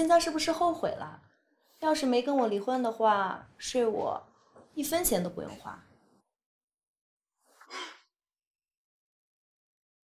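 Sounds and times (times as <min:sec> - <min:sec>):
woman sighing: 0:07.7 - 0:08.1.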